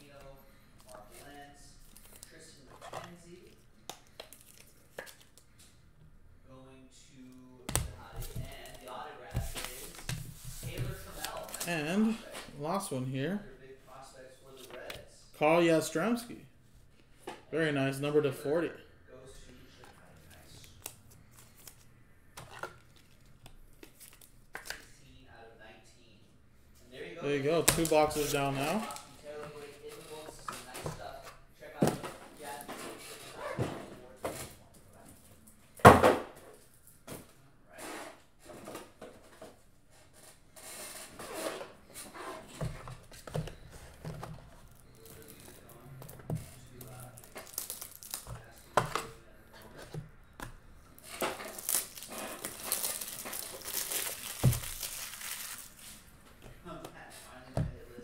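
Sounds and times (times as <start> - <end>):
plastic wrapper crinkling: 46.8 - 48.6, 51.0 - 56.0.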